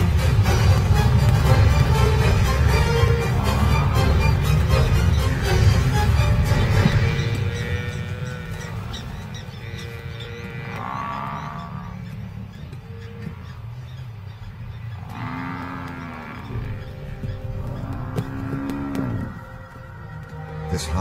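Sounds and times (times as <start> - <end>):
dramatic orchestral score: 0.0 - 9.5, 16.4 - 21.0
buffalo bellowing: 0.0 - 21.0.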